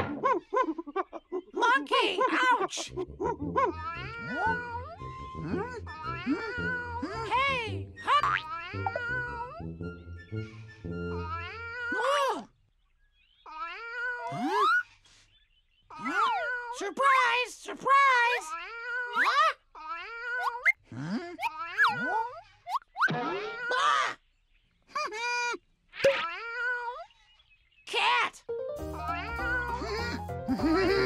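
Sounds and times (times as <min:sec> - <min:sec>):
cartoon character squeaky babble: 0:02.7 - 0:09.6, 0:11.2 - 0:12.4, 0:13.5 - 0:14.9, 0:15.9 - 0:16.9, 0:18.2 - 0:24.2
light background music: 0:03.0 - 0:11.6, 0:28.5 - 0:31.0.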